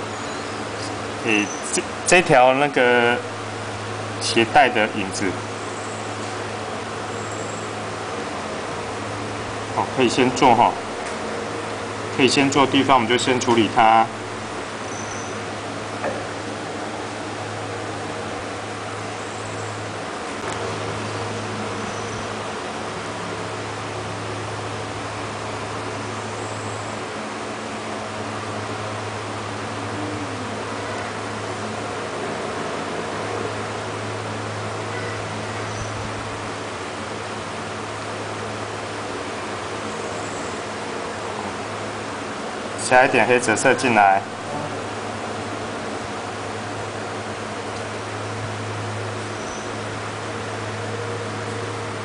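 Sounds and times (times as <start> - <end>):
low room hum with hiss: 0.0 - 52.0.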